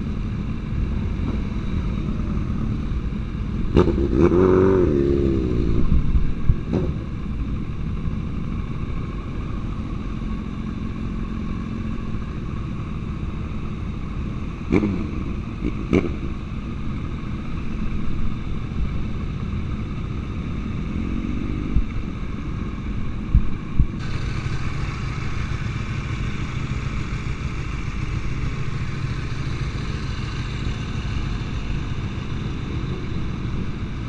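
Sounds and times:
motorcycle engine: 0:00.0 - 0:34.0
road noise: 0:00.0 - 0:34.0.

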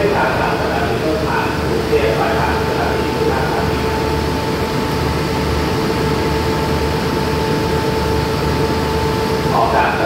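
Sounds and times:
diesel train engine humming: 0:00.0 - 0:10.0
mid-pitched whine: 0:00.0 - 0:10.0.

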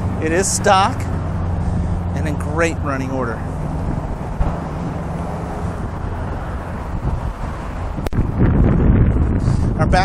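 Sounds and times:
car engine idling: 0:00.0 - 0:08.0
wind buffeting microphone: 0:00.0 - 0:10.0.

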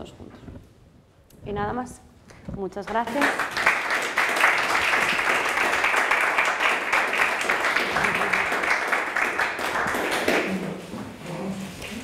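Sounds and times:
audience applauding: 0:03.1 - 0:10.7.

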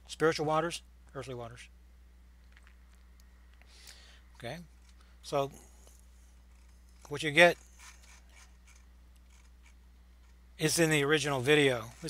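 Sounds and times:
low electrical hum: 0:00.0 - 0:12.0
faint clicks and scratches: 0:04.4 - 0:12.0.

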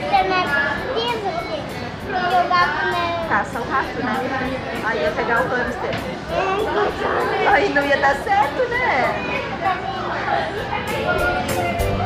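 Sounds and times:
young boy talking: 0:00.0 - 0:03.3.

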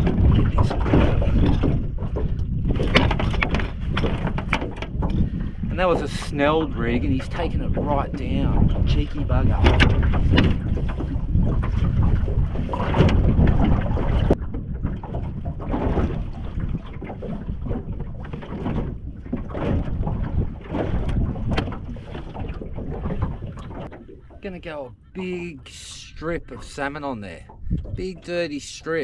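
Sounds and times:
wind buffeting microphone: 0:00.0 - 0:29.0
knocks of fishing gear handled: 0:02.8 - 0:05.2.

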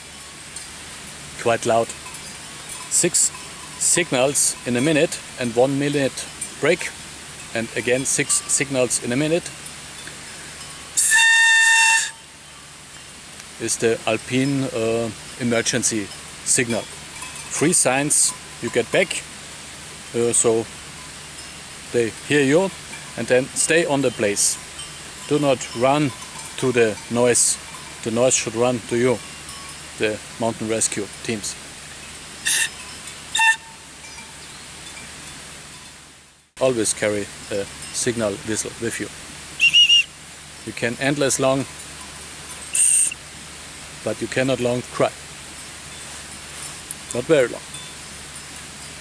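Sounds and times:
shrill whistle blast: 0:11.0 - 0:12.2, 0:32.5 - 0:32.8, 0:33.4 - 0:33.8, 0:39.6 - 0:40.1
breathy whistle tone: 0:32.4 - 0:32.8, 0:39.6 - 0:40.1.

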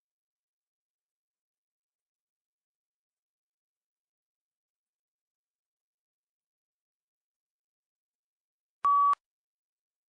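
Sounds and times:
short electronic beep: 0:08.9 - 0:09.2.

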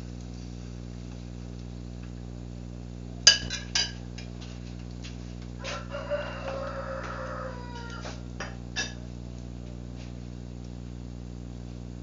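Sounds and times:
rooster crowing: 0:05.6 - 0:08.4.

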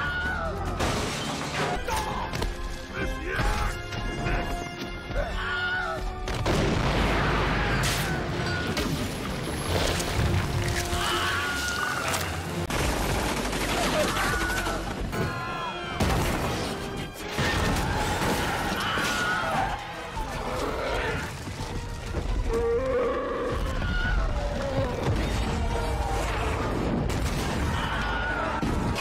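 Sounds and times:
orchestral film music: 0:00.0 - 0:29.0.

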